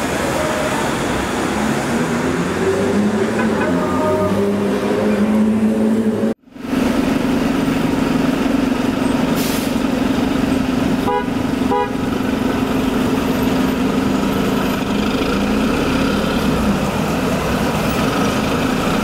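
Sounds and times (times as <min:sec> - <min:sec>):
bus engine droning: 0:00.0 - 0:19.0
bus horn toots: 0:11.0 - 0:12.1.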